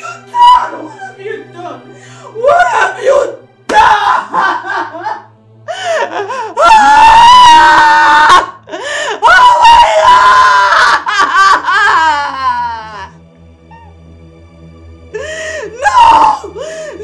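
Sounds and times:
woman wailing and sobbing: 0.0s - 1.2s, 2.3s - 13.1s, 15.2s - 17.0s
man laughing: 4.1s - 5.3s.

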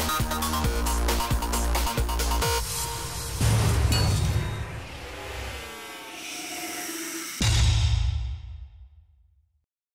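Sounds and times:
whoosh: 2.4s - 7.4s
heavy bass hits: 2.6s - 5.7s.

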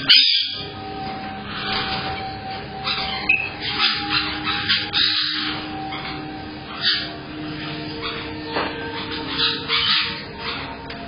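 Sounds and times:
parrots squawking: 0.0s - 11.0s.

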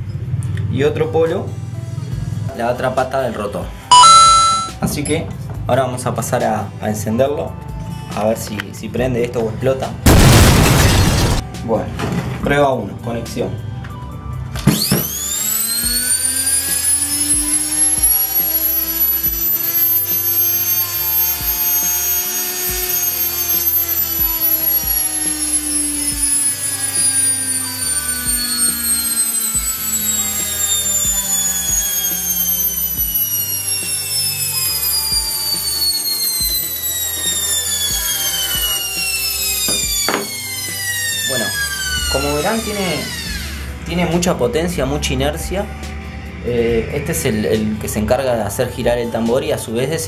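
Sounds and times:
electric motor whine: 14.7s - 43.8s.

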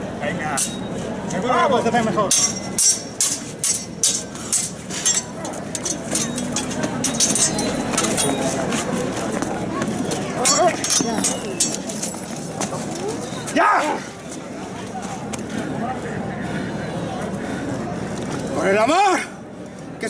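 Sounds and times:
crowd chatter: 0.0s - 20.0s
steel swords clashing: 0.6s - 1.0s, 2.3s - 8.7s, 10.4s - 12.3s.

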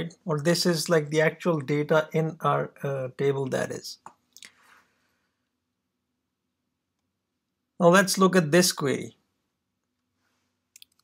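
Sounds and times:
man's voice: 0.0s - 4.0s, 7.8s - 9.1s.

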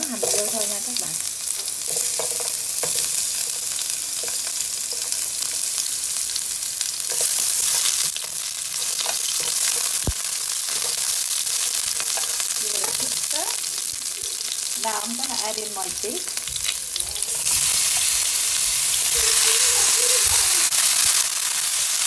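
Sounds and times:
onion sizzling in hot oil: 0.0s - 22.0s.

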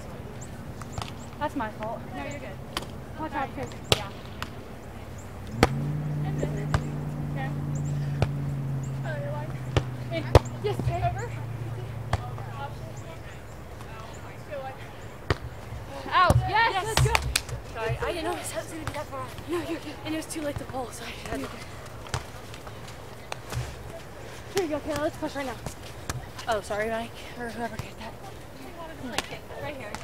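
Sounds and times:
distant voices: 0.0s - 30.0s
hands slapping volleyball: 2.7s - 3.0s, 3.6s - 4.6s, 5.4s - 5.9s, 16.2s - 17.6s, 20.4s - 26.7s.

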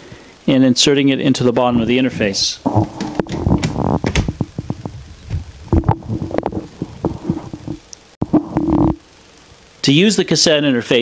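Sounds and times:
dull thumps: 2.7s - 9.0s.

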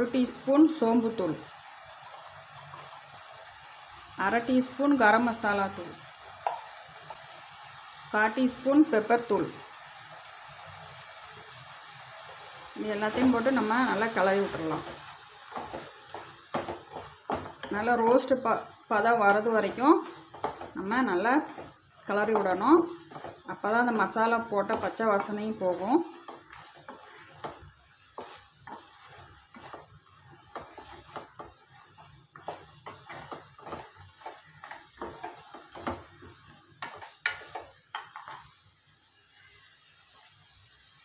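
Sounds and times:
faint sizzle from hot pan: 0.0s - 41.0s
wooden spatula scraping a pan: 12.2s - 40.6s.

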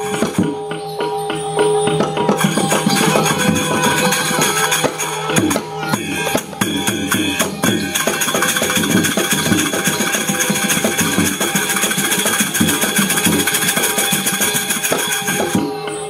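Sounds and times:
hand drums playing fast: 0.0s - 16.0s
metal percussion: 0.0s - 16.0s
ringing pitched tones: 0.0s - 16.0s.

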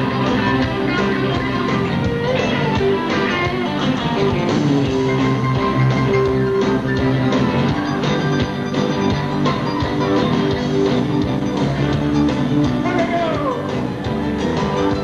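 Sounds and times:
live rock band instrumental: 0.0s - 15.0s.

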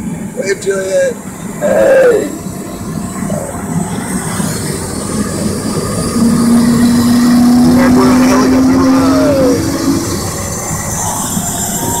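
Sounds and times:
faint high whine: 0.0s - 12.0s
helicopter turbine engine running: 0.0s - 12.0s.

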